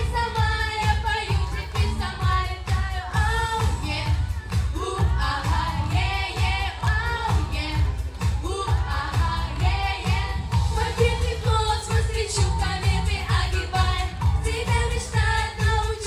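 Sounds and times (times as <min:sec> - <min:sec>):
backing track with bass drum beat: 0:00.0 - 0:16.0
girls singing pop song: 0:00.0 - 0:16.0.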